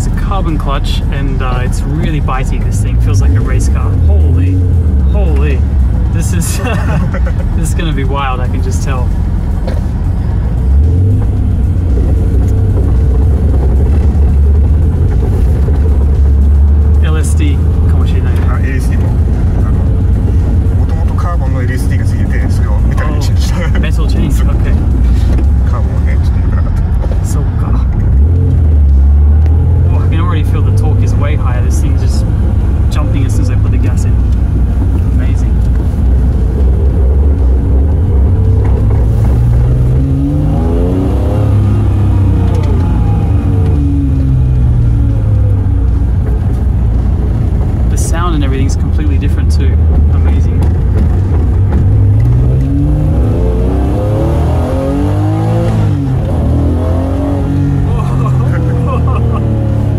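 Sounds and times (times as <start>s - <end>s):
car engine revving through gears: 0.0s - 59.9s.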